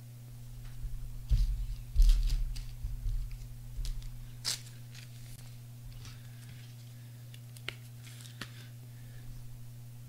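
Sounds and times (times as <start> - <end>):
trading cards rustling and clicking: 1.4 - 8.7.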